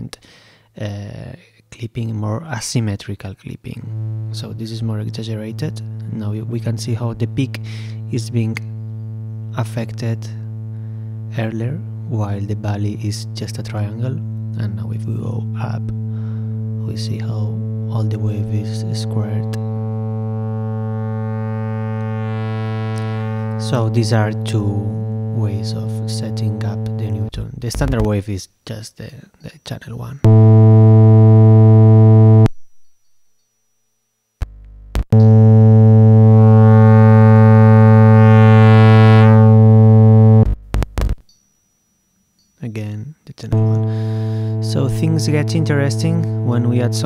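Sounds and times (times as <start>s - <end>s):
buzzy distorted synthesizer note: 3.7s - 28.2s, 30.2s - 32.7s, 34.4s - 41.3s, 43.5s - 47.0s.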